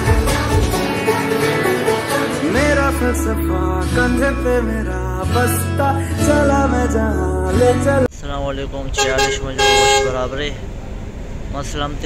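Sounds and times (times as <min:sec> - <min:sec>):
people talking: 0:08.1 - 0:10.7, 0:11.5 - 0:12.0
vehicle horn: 0:09.0 - 0:10.3.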